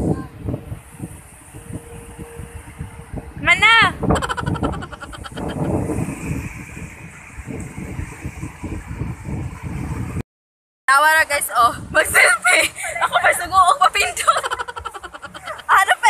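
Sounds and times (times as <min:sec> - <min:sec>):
wind rumbling on microphone: 0:00.0 - 0:10.2, 0:10.9 - 0:16.0.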